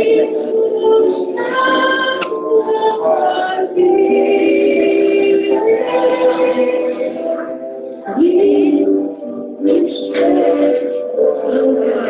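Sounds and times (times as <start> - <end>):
woman singing into microphone: 0.0 - 7.5, 8.1 - 12.0.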